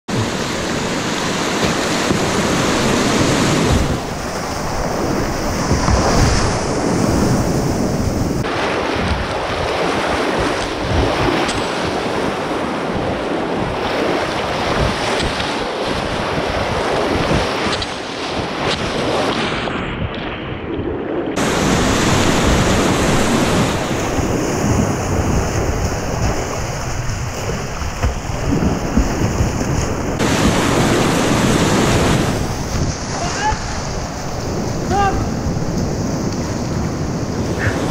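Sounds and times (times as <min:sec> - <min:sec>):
whitewater rapids rushing and splashing: 0:00.1 - 0:19.4, 0:21.4 - 0:37.9
muffled water washing over camera: 0:00.1 - 0:37.9.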